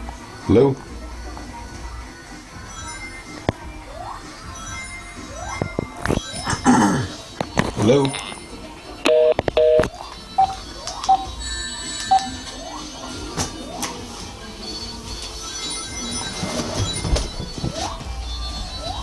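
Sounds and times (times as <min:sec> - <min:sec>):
faint background music: 0:00.0 - 0:19.0
electronic telephone beeps: 0:09.0 - 0:12.4.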